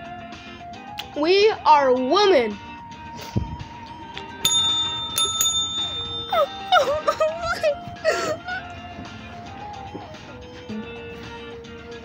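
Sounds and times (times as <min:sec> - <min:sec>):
service bell ringing: 0:04.4 - 0:07.8.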